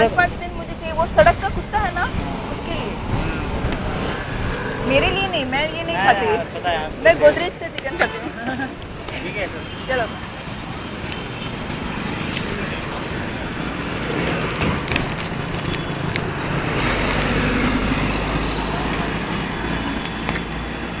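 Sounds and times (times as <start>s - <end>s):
vehicles passing: 0.0s - 21.0s.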